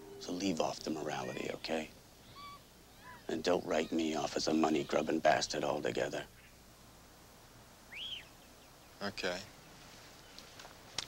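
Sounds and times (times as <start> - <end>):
faint steady hiss: 0.0 - 11.0
whistled bird call: 2.3 - 3.3, 7.9 - 8.4.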